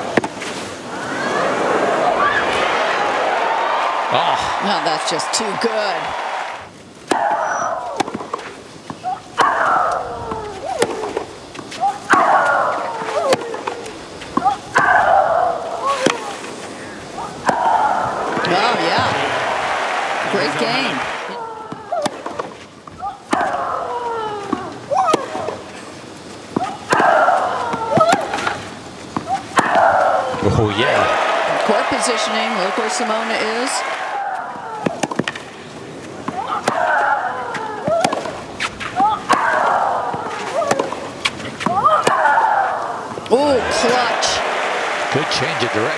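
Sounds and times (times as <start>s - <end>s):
crowd noise: 0.0s - 8.1s, 9.1s - 25.7s, 26.6s - 45.9s
players grunting: 0.9s - 6.6s, 14.5s - 22.0s, 29.6s - 35.0s, 41.6s - 45.9s
racket striking tennis ball: 37.9s - 42.3s.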